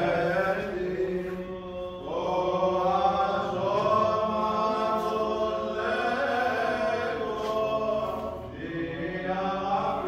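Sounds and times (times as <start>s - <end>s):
voices chanting a hymn: 0.0s - 10.0s.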